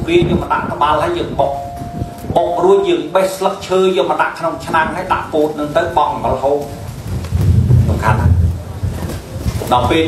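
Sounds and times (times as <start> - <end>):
man speaking into microphone: 0.0 - 6.9, 7.8 - 8.6, 9.6 - 10.0
steady tone: 1.0 - 4.1.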